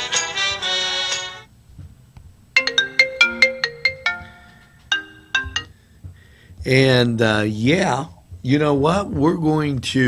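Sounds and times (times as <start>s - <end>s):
ringtone melody: 2.6s - 5.8s
song: 2.6s - 5.8s.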